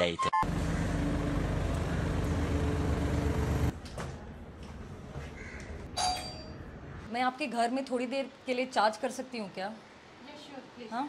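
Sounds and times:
vehicle engine running: 0.4 - 3.7
street noise: 0.4 - 11.0.

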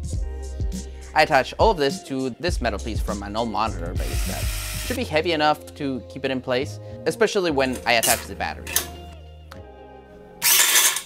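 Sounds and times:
quiet background music: 0.0 - 11.0
can with coins rattling: 10.4 - 11.0.

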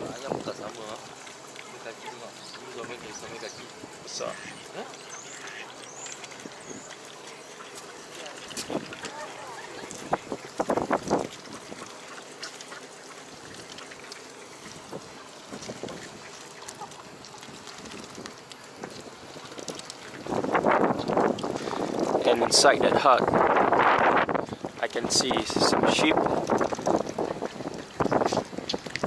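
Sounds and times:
outdoor background noise: 0.0 - 29.0
ducks quacking: 1.7 - 17.7.

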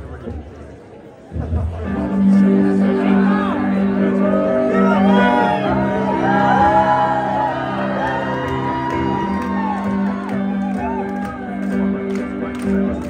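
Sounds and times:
audience whooping and shouting: 4.0 - 12.1.

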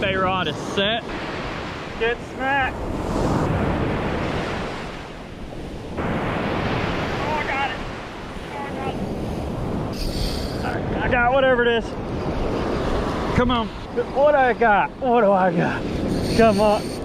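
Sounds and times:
surf breaking on beach: 0.0 - 11.6
wind buffeting microphone: 0.0 - 17.0.

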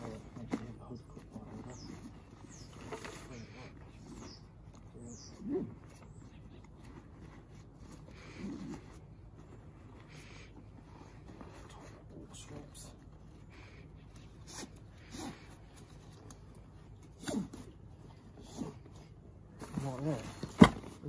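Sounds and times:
fabric and straps rustling: 0.0 - 21.0.

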